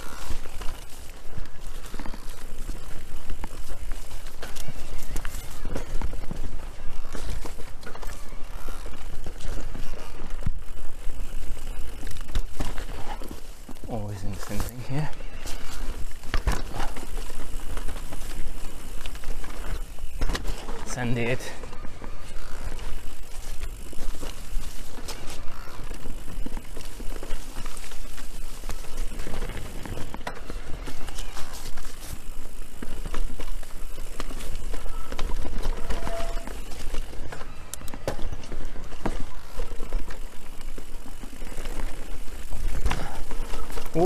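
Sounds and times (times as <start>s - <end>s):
bike rattles and clicks: 0.0s - 44.0s
bike tyres on dirt: 0.0s - 44.0s.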